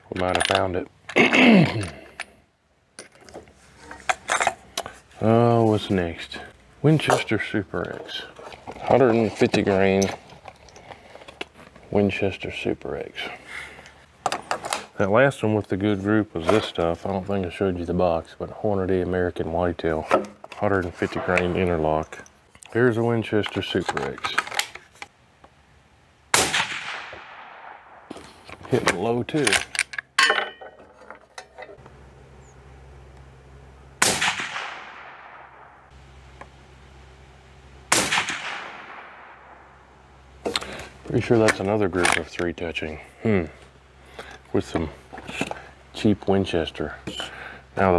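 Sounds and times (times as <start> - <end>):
soft rustle: 3.2 - 6.5
rifle shots with echo: 26.3 - 28.1, 34.0 - 35.9, 37.9 - 39.7.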